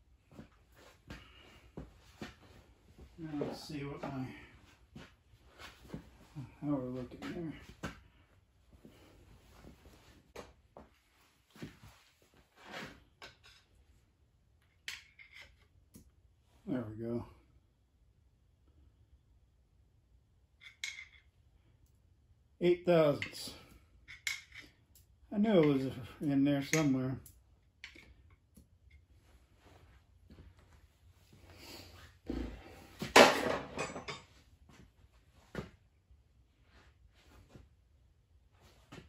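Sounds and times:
metal tools clattering: 0:33.1 - 0:34.4.

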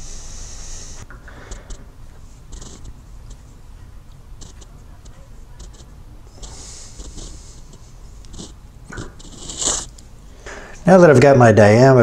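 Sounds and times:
scratchy rustles: 0:00.8 - 0:10.0
micrometer clicks: 0:00.9 - 0:10.1.

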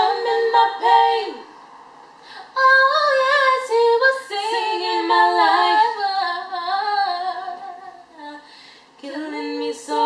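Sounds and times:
woman singing a cappella: 0:00.0 - 0:01.4, 0:02.4 - 0:10.0.

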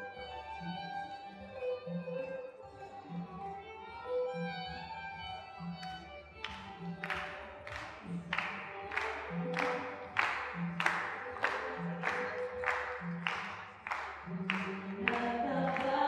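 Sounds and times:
hand claps steady beat: 0:05.7 - 0:16.0.

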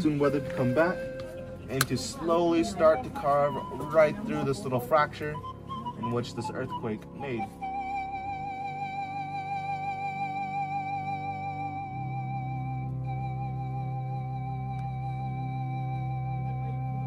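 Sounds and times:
sustained low chords: 0:00.0 - 0:17.0
wavering high tone: 0:00.0 - 0:17.0.

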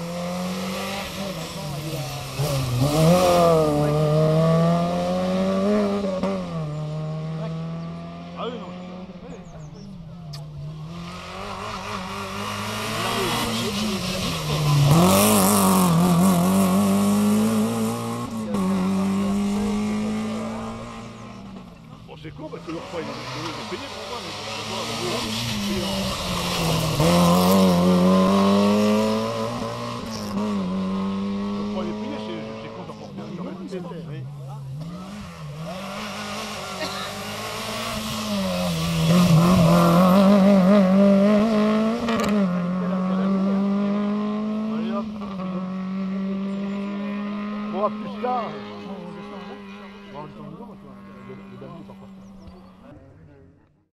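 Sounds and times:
rally car engines revving past: 0:00.0 - 0:53.7.

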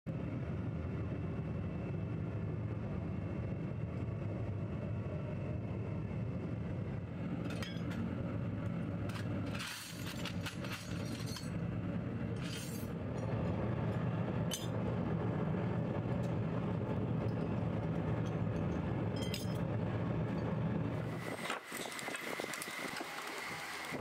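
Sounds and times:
low mechanical rumble: 0:00.1 - 0:24.0
scrap metal parts clattering: 0:07.4 - 0:08.0, 0:09.1 - 0:11.5, 0:12.4 - 0:13.0, 0:14.5 - 0:14.7, 0:19.2 - 0:19.6.

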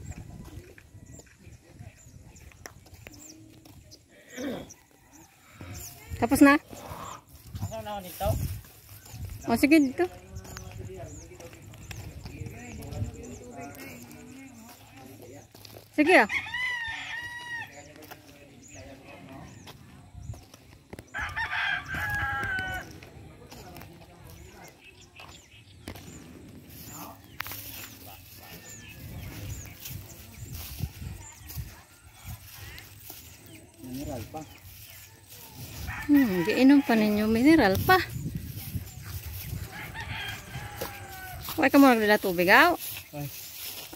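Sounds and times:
outdoor ambience: 0:00.0 - 0:43.9
small birds chirping: 0:00.0 - 0:43.9.

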